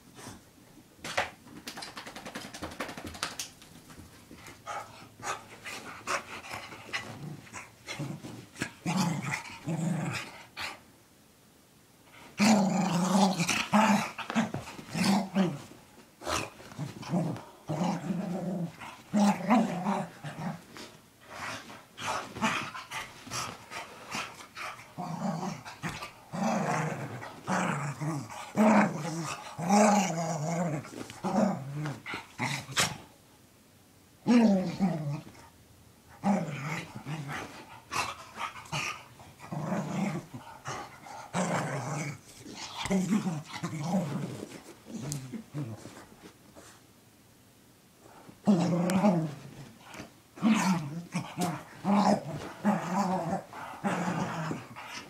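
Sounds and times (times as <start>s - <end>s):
dog growling playfully: 4.7s - 10.8s, 12.2s - 33.1s, 34.2s - 35.5s, 36.1s - 46.1s, 48.4s - 55.0s.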